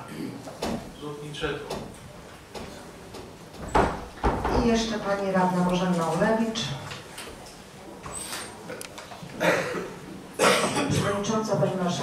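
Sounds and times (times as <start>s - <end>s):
person coughing: 9.4s - 11.1s.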